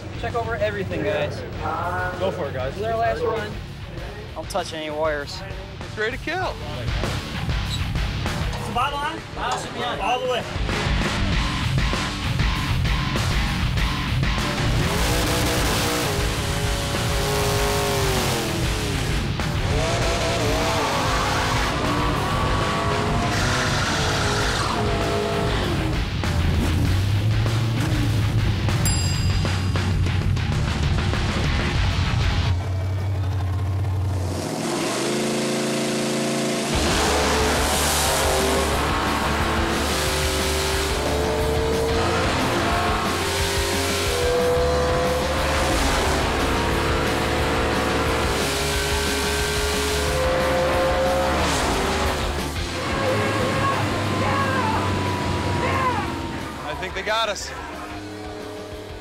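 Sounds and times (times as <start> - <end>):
rock music: 0.0 - 34.7, 36.4 - 59.0
drag race engines revving: 5.8 - 28.8, 30.0 - 59.0.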